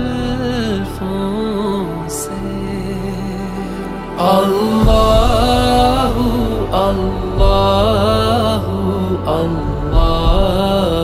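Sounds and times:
low drone: 0.0s - 11.0s
solo voice chanting: 0.0s - 11.0s.

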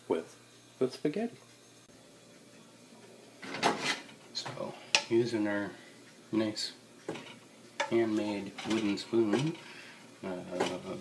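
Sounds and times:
cookware scraping and clattering: 3.4s - 4.2s, 7.0s - 9.8s, 10.5s - 11.0s.

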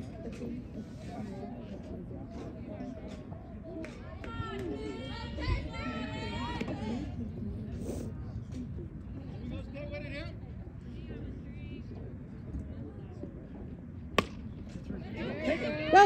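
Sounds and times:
faint distant voices: 0.0s - 16.0s
bat hitting ball crack: 14.2s - 14.5s.

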